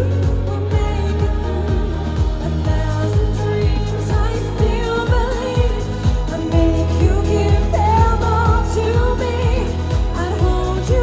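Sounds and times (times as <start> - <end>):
amplified backing track: 0.0 - 11.0
bass line: 0.0 - 11.0
kick-drum beat: 0.0 - 11.0
woman singing into a microphone: 0.0 - 11.0.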